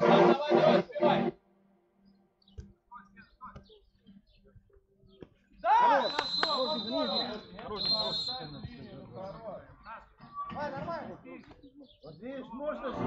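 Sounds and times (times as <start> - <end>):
men shouting: 0.0 - 1.3
long high whistle: 5.9 - 8.4.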